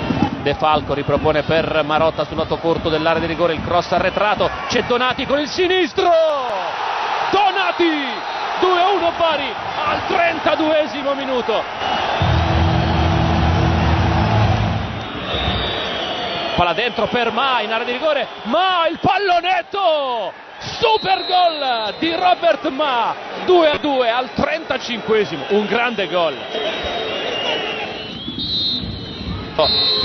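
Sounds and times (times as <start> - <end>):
stadium crowd cheering: 0.0 - 30.0
deep rumble: 12.2 - 15.0
referee whistle blast: 14.5 - 17.1, 20.7 - 22.3, 25.4 - 30.0.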